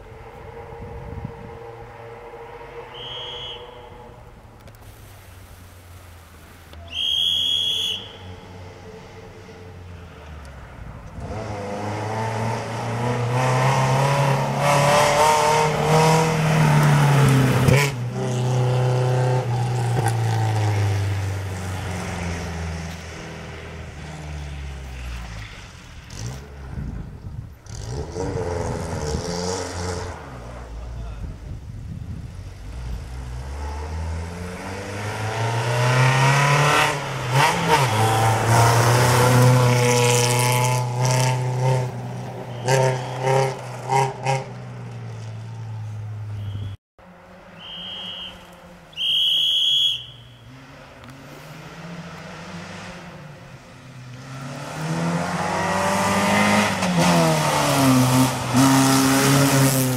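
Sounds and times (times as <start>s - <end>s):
rally car engine revving: 11.1s - 26.8s, 27.6s - 31.1s, 32.6s - 45.6s, 50.4s - 59.9s.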